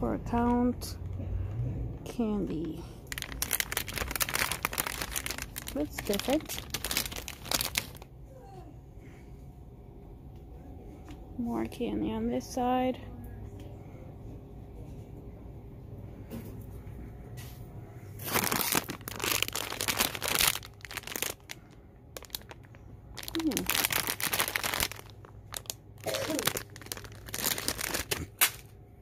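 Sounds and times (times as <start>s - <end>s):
plastic packaging crinkling: 2.6s - 8.1s, 18.2s - 28.7s.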